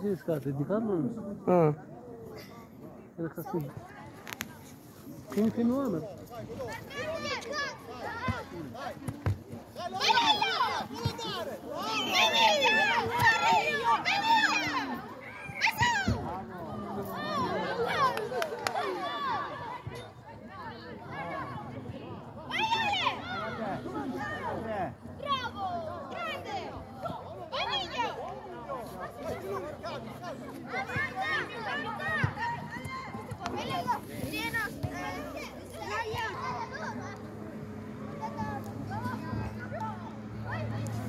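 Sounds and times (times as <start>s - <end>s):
children shouting: 9.8s - 16.3s, 16.9s - 20.0s, 22.4s - 24.6s, 25.2s - 28.3s, 29.2s - 34.0s, 34.9s - 37.2s
children calling out: 11.8s - 16.1s.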